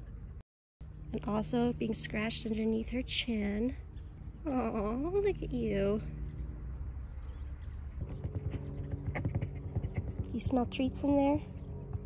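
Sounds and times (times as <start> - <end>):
fox sniffing: 3.2 - 10.4.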